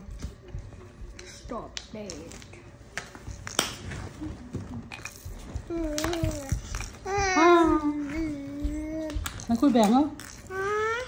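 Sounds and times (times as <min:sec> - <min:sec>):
toddler vocal sound: 0:05.7 - 0:09.4, 0:10.2 - 0:11.0.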